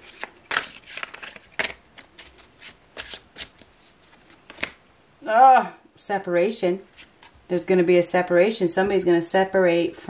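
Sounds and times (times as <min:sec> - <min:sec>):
cards being shuffled: 0:00.0 - 0:04.8.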